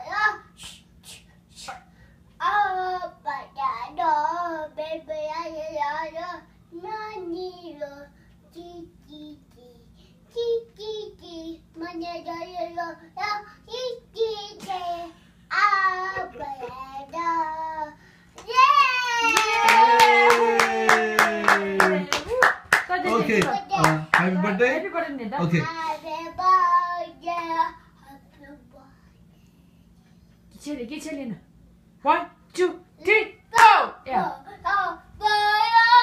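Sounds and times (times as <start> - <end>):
toddler singing: 2.4 - 7.9, 34.4 - 36.0
hand clapping: 18.4 - 24.3, 33.6 - 33.8.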